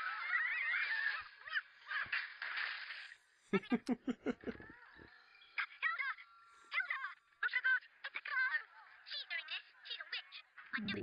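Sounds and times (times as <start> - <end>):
cartoon creature squawks and chatter: 0.0 - 2.3.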